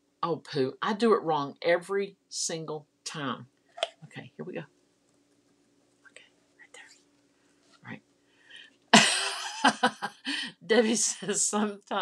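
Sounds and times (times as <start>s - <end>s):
woman whispering: 6.0s - 7.0s.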